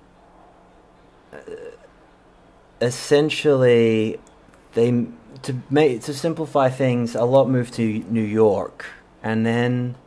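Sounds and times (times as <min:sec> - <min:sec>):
faint steady hum: 0:00.0 - 0:10.0
man's throaty vocal sound: 0:01.3 - 0:01.9.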